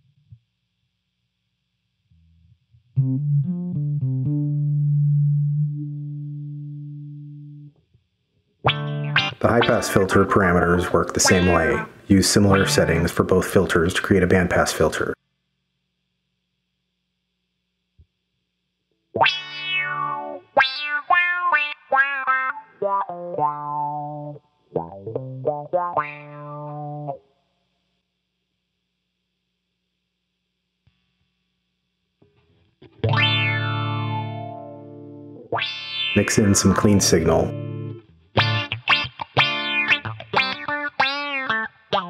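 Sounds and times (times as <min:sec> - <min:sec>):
guitar notes with filter sweep: 0:02.1 - 0:07.9, 0:08.6 - 0:15.2, 0:19.2 - 0:27.2, 0:32.3 - 0:42.0.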